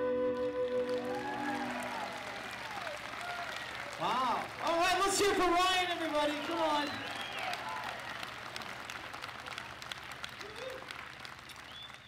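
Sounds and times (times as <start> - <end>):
audience applauding: 0.1 - 12.0.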